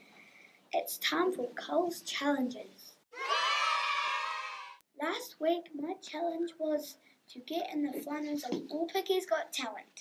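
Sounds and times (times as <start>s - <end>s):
children cheering: 3.2s - 4.8s.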